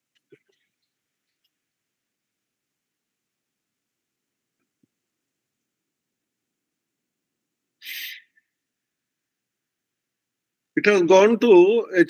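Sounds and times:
faint thin whistle: 7.8 - 8.5.

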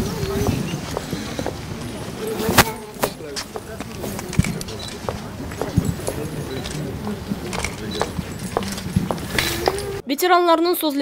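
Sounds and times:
footsteps on stone paving: 0.0 - 10.0
people talking: 0.0 - 11.0.

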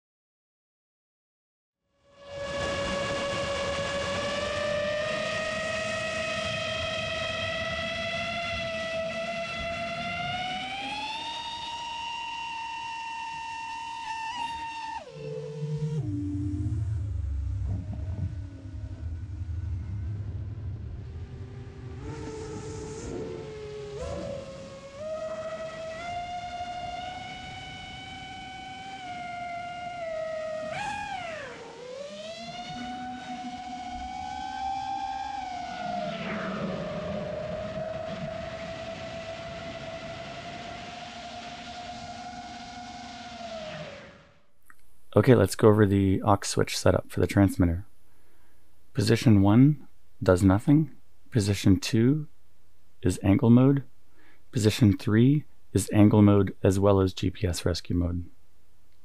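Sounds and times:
quadcopter propellers whining: 2.2 - 44.2.

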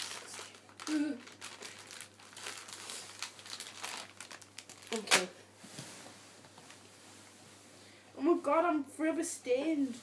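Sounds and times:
plastic wipe packet crinkling: 0.0 - 5.3.

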